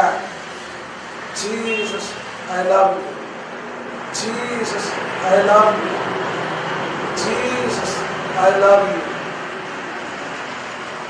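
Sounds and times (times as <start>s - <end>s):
steady hissing room noise: 0.0s - 11.0s.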